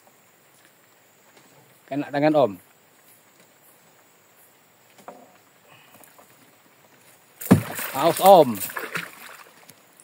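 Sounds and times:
fish splashing at the surface: 7.4s - 9.6s.

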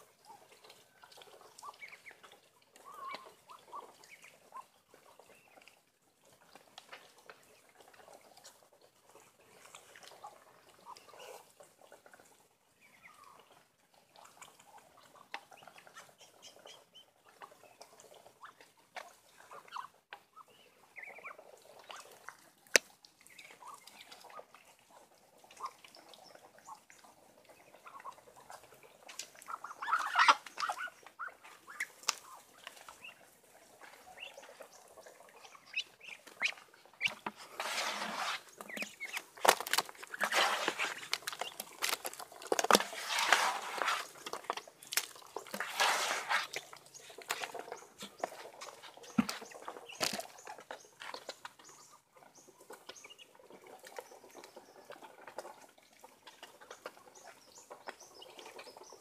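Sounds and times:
duck bills dabbling in feed: 0.0s - 59.0s.

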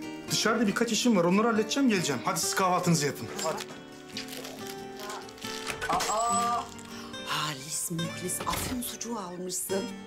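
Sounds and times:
soft background music: 0.0s - 10.0s
plastic shopping bags rustling: 3.2s - 7.4s.

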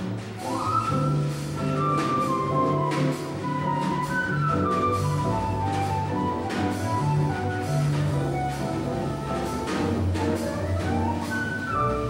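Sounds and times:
drums with cymbals: 0.0s - 12.0s
flute melody: 0.0s - 12.0s
piano: 0.0s - 12.0s
walking upright bass: 0.0s - 12.0s.

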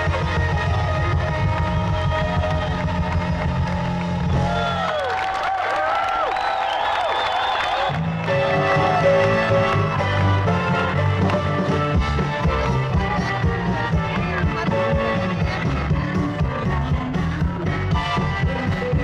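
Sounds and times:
live rock band: 0.0s - 4.8s, 7.9s - 19.0s.

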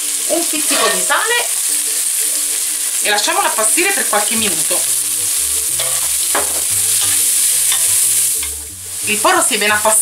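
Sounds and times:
leek sizzling in hot oil: 0.0s - 10.0s.

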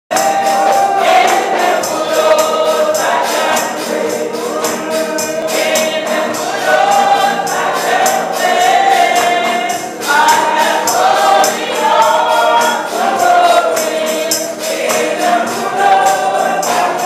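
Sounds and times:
choir singing gospel song: 0.1s - 17.0s
tambourine beat: 0.1s - 17.0s.

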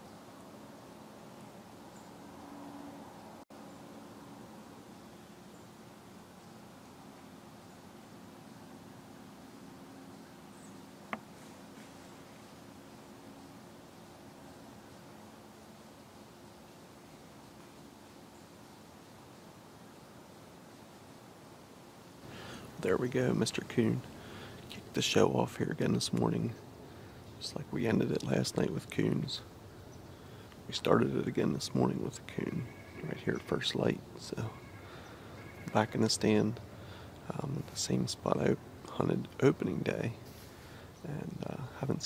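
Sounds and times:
faint woodland hiss: 0.0s - 42.0s
animal rustling dry leaves: 9.9s - 21.2s.

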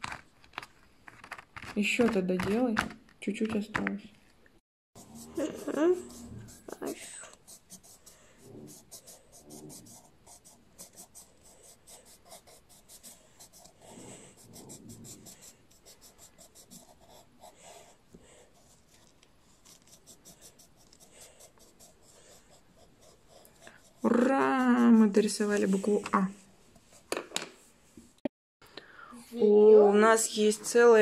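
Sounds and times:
pencil scribbling on paper: 5.0s - 27.0s.

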